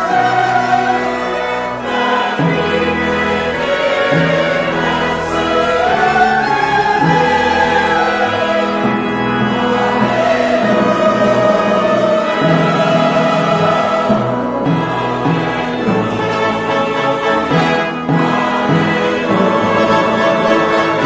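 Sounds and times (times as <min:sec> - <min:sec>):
choir singing a hymn: 0:00.0 - 0:21.0
instrumental accompaniment: 0:00.0 - 0:21.0.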